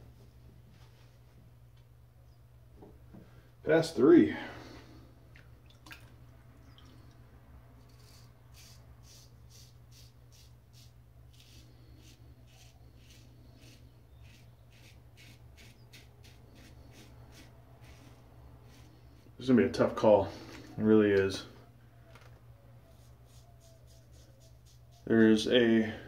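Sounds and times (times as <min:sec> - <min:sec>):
razor scraping stubble: 0:07.8 - 0:19.3, 0:22.9 - 0:25.5.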